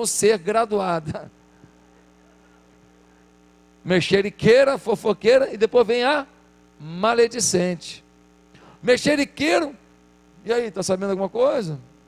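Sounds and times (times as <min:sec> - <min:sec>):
man speaking: 0:00.0 - 0:01.3, 0:03.9 - 0:08.1, 0:08.8 - 0:09.8, 0:10.4 - 0:11.9
electrical mains hum: 0:00.0 - 0:12.0.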